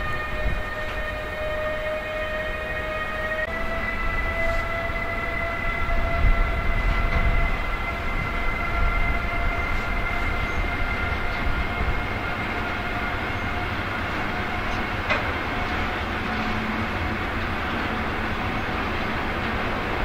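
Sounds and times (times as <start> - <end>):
locomotive traction whine: 0.0 - 20.0
wheels rumbling on rail: 0.0 - 20.0.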